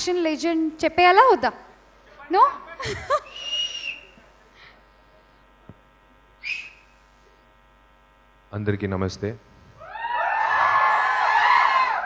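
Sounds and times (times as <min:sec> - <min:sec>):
audience whistling: 0:03.3 - 0:04.2, 0:06.4 - 0:07.0.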